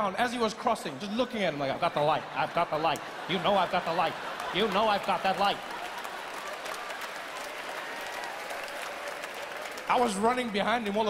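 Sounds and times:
large audience applauding: 0:02.7 - 0:11.0.

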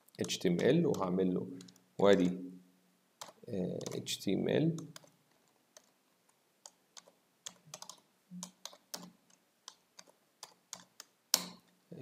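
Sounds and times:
computer keyboard typing: 0:00.2 - 0:02.3, 0:03.2 - 0:04.1, 0:04.7 - 0:06.0, 0:06.6 - 0:11.2.

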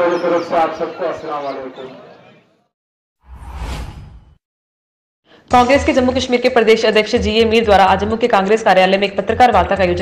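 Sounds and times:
whoosh sound effect: 0:03.2 - 0:04.4.

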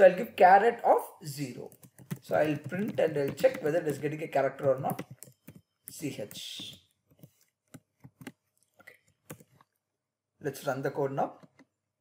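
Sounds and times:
computer keyboard keystrokes: 0:01.6 - 0:08.4, 0:09.2 - 0:09.6.

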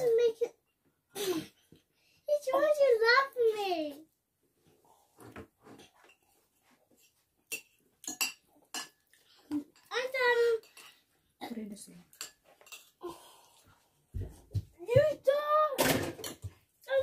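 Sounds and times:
cutlery scraping a plate: 0:07.0 - 0:09.9, 0:12.1 - 0:13.0.

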